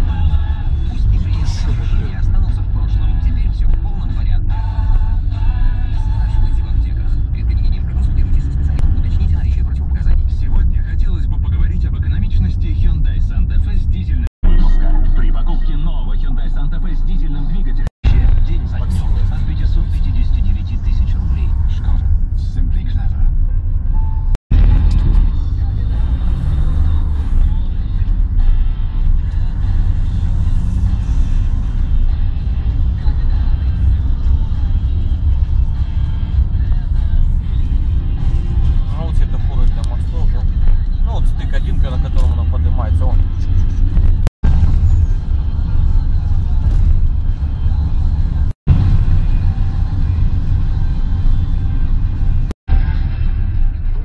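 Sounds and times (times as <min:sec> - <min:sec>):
music: 0:00.0 - 0:10.8, 0:14.4 - 0:17.2, 0:23.0 - 0:54.0
voices: 0:00.0 - 0:23.6, 0:32.1 - 0:44.2
car driving rumble: 0:00.0 - 0:54.0.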